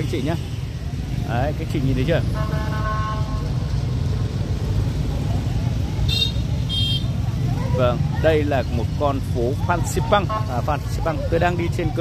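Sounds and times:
street traffic rumbling: 0.0s - 12.0s
vehicle horn: 2.3s - 3.6s, 6.1s - 7.1s.

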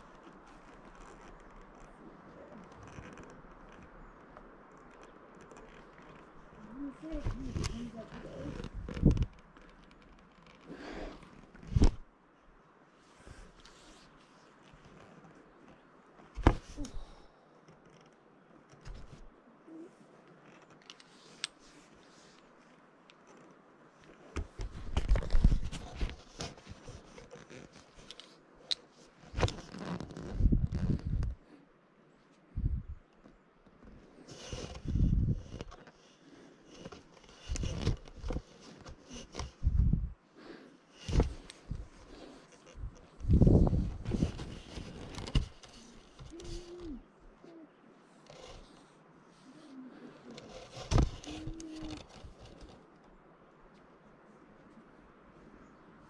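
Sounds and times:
climbing gear rustling: 0.0s - 12.0s, 20.0s - 31.4s, 32.6s - 40.1s, 41.0s - 47.6s, 48.2s - 48.9s, 49.5s - 53.2s
camera handling noise: 41.0s - 47.0s, 50.3s - 53.0s.

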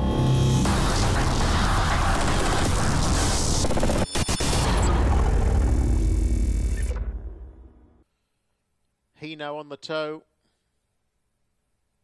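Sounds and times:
booming cinematic music: 0.0s - 8.0s
low rumble: 4.7s - 8.0s.

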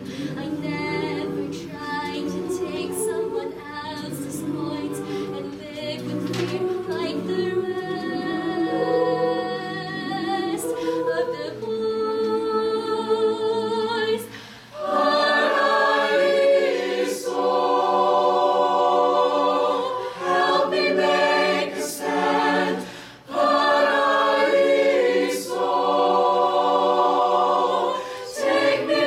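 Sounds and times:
choir singing chords: 0.0s - 29.0s.

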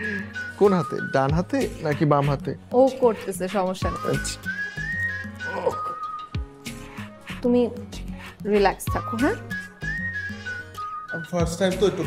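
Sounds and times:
person whistling tune: 0.0s - 1.8s, 3.9s - 6.9s, 8.9s - 11.9s
background music with bass: 0.0s - 2.9s.

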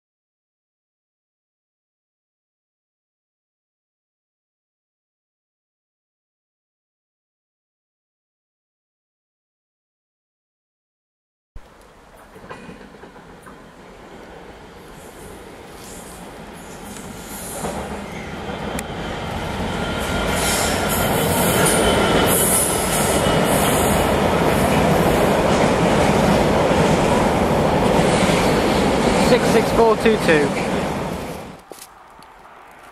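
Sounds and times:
diesel locomotive engine: 11.6s - 31.7s
freight wagons rumbling on rails: 11.6s - 31.7s.

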